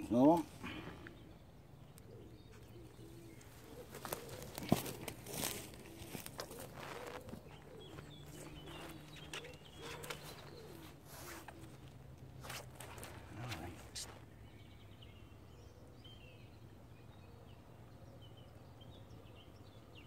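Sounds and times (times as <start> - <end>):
birds calling: 0.0 - 20.0
footsteps in boots on grass: 3.4 - 9.2.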